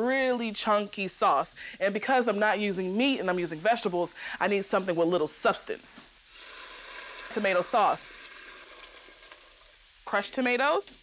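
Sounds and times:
sauce sizzling in hot oil: 0.0 - 11.0.

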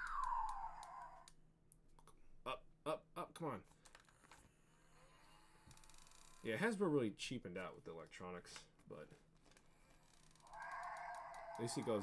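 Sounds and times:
toy dinosaur roar through speaker: 10.4 - 12.0.

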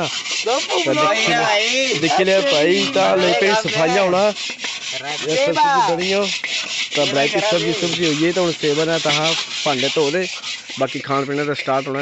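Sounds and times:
scouring metal pot with grit: 0.0 - 12.0
voices chatting: 0.0 - 12.0.

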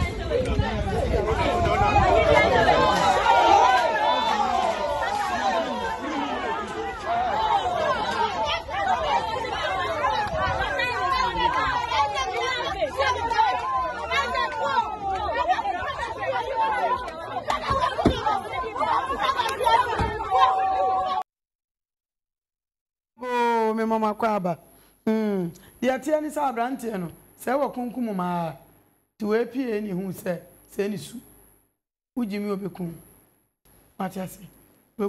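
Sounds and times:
crowd shouting and crying out: 0.0 - 21.3.

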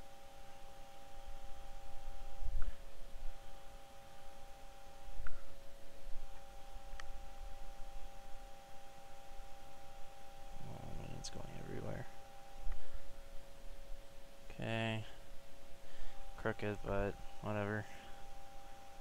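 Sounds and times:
two-note electrical hum: 0.0 - 19.0.

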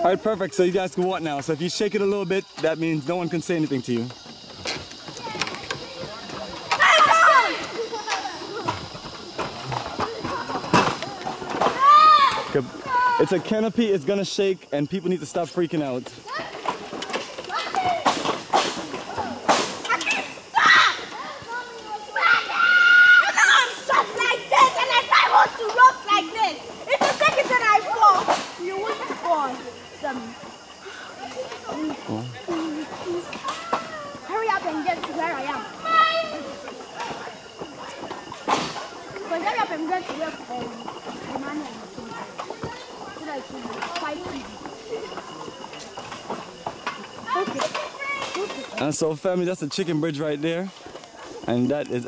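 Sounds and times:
children talking and calling out: 0.0 - 52.0
footsteps on wooden planks: 3.7 - 13.2, 16.0 - 23.2, 30.2 - 48.9.

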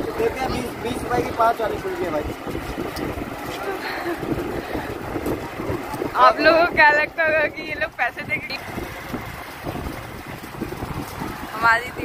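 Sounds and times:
fan wind buffeting microphone: 0.0 - 12.0.

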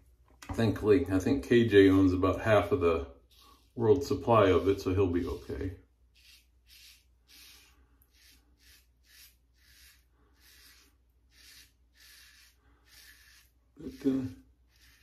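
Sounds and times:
razor scraping stubble: 3.2 - 15.0.

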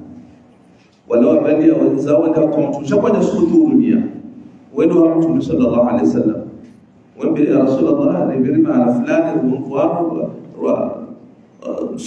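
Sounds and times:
man speaking: 1.1 - 12.0.

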